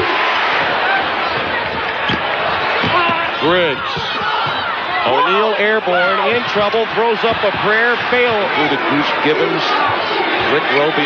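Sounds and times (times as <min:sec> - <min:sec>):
arena crowd din: 0:00.0 - 0:11.0.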